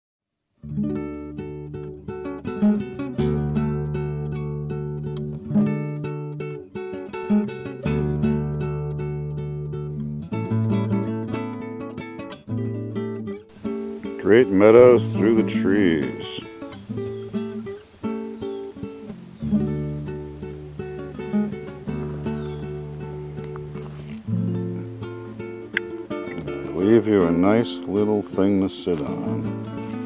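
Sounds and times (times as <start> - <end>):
plucked acoustic guitar: 0.6 - 30.0.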